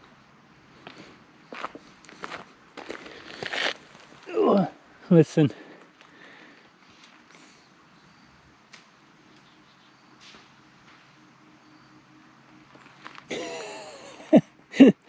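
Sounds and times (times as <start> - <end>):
soft outdoor hiss: 0.0 - 15.0
person speaking: 4.2 - 5.8.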